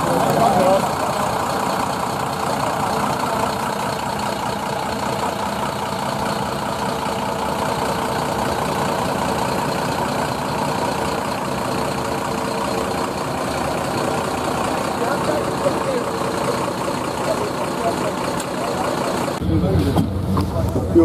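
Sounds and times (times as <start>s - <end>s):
diesel bus engine idling: 0.0s - 21.0s.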